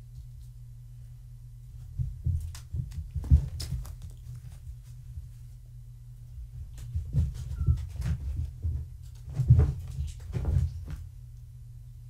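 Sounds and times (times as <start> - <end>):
paws rustling on blanket: 2.4 - 5.6.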